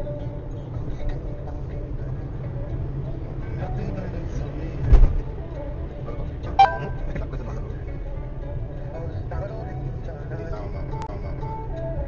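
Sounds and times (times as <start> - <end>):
car road noise: 0.0 - 11.0.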